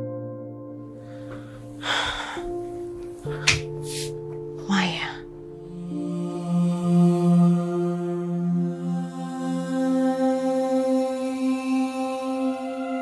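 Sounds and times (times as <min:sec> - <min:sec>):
ambient drone chords: 0:00.8 - 0:13.0.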